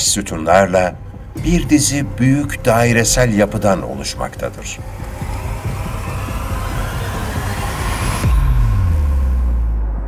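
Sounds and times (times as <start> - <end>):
background music: 0.0 - 10.0
deep boom: 1.0 - 10.0
rising cinematic whoosh: 1.3 - 10.0.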